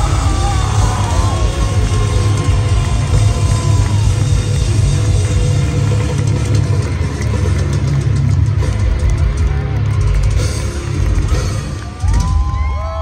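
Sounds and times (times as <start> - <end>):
heavy metal band playing: 0.0 - 13.0.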